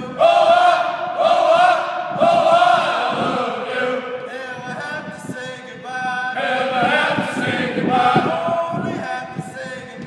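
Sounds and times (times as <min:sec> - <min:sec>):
voices singing long notes: 0:00.0 - 0:10.0.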